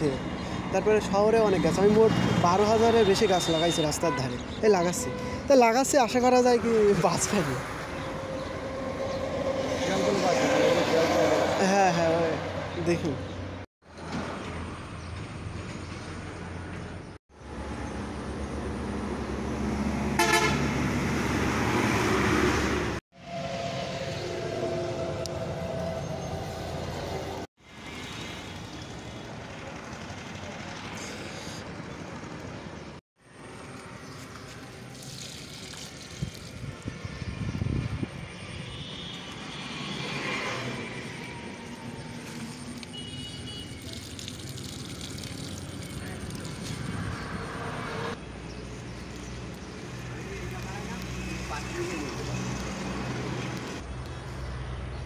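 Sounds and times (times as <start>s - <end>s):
passing vehicles: 0.0s - 55.0s
vehicle horn: 20.1s - 20.8s, 38.6s - 39.8s, 42.8s - 43.9s.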